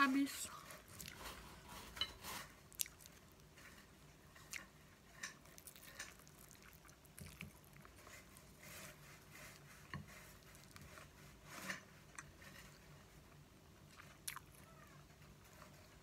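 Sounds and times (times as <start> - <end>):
chewing food: 0.8 - 8.5, 12.1 - 12.8, 13.9 - 14.8.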